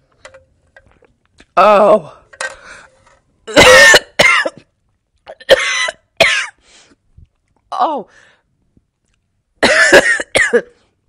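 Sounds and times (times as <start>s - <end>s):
woman coughing: 3.5s - 4.6s, 5.4s - 6.6s, 9.6s - 10.8s.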